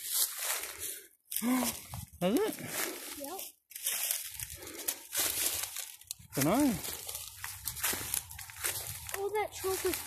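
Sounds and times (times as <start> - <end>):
dry leaves and sticks crunching: 0.0 - 10.0.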